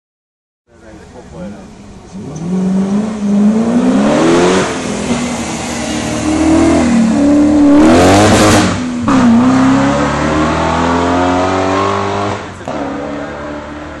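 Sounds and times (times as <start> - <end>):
car engine revving through gears: 2.1 - 14.0.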